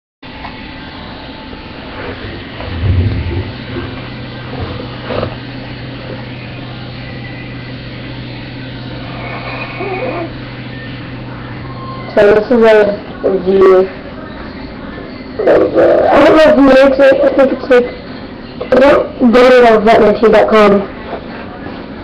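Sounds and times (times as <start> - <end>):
microphone hum and hiss: 2.0 - 6.8
loud dull bump: 2.6 - 5.3.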